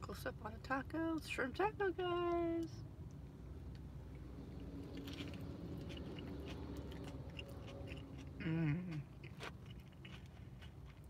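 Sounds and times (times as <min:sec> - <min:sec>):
low steady hum: 0:00.0 - 0:11.0
person chewing food: 0:04.5 - 0:11.0.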